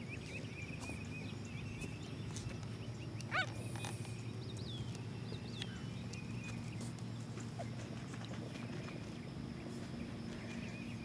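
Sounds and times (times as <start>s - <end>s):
puppy yelping: 3.3s - 3.6s.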